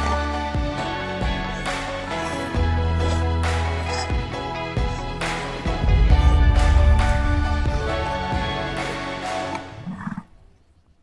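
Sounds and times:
closing music: 0:01.6 - 0:09.8.

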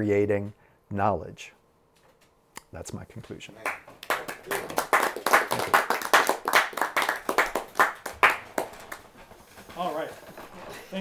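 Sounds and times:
audience applauding: 0:03.6 - 0:09.2.

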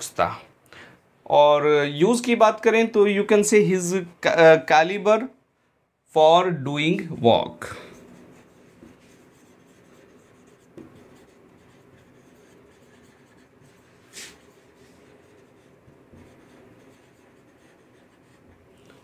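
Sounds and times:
marker pen writing on whiteboard: 0:07.9 - 0:19.0.

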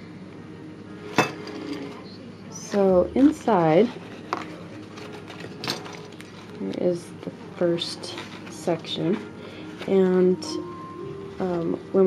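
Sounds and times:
paper rustling: 0:03.2 - 0:06.8, 0:07.8 - 0:10.1.

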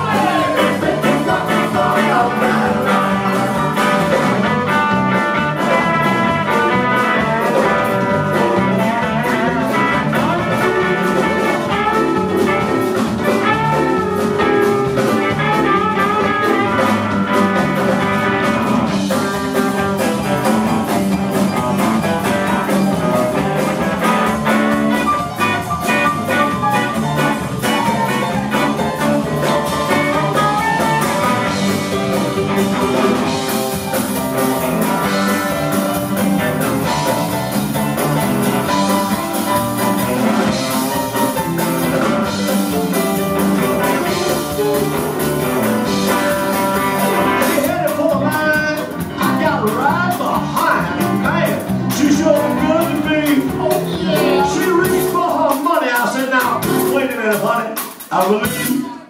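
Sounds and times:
electric guitar: 0:00.0 - 0:55.3
electric bass: 0:00.0 - 0:55.6
organ-style keyboard: 0:00.0 - 0:58.9
drum kit: 0:00.0 - 0:59.0.

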